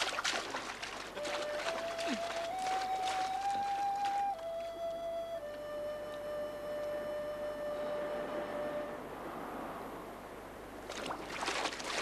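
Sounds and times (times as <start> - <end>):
feet splashing through water: 0.0 - 5.0, 10.8 - 12.0.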